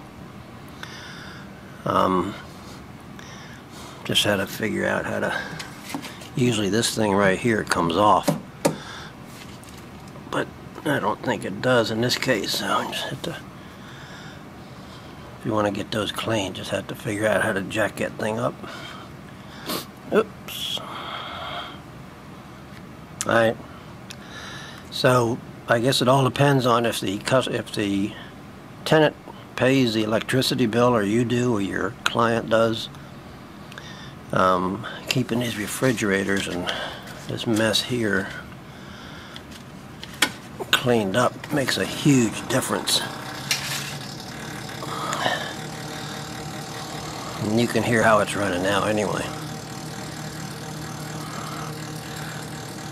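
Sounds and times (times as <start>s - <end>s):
refrigerator humming: 0.0s - 25.9s, 27.0s - 52.9s.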